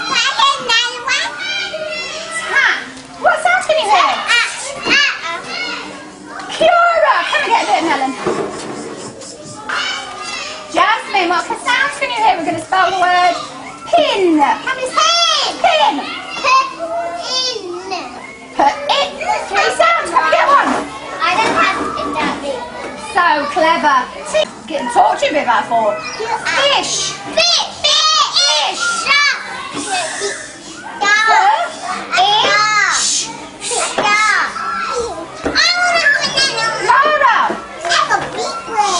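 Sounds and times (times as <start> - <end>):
young children talking: 0.0 - 38.9.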